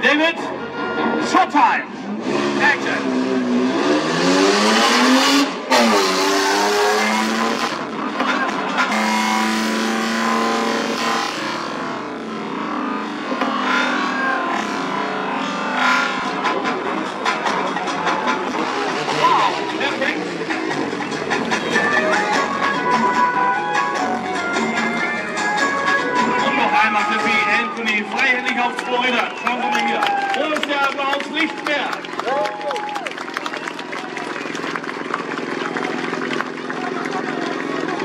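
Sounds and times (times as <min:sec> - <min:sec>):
car engine revving: 0:01.8 - 0:29.8, 0:33.2 - 0:38.0
quad bike engine revving: 0:02.0 - 0:23.2.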